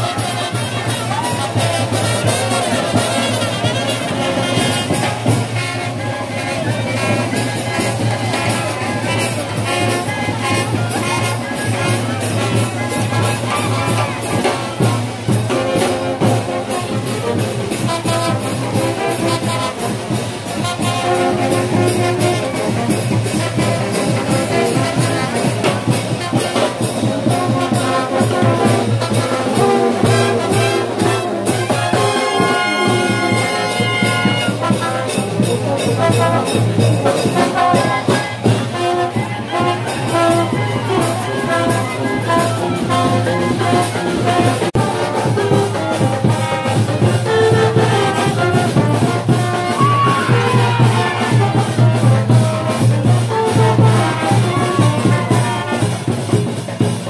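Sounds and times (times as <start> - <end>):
bass drum and cymbals: 0.0 - 57.0
trumpets and trombones: 0.0 - 57.0.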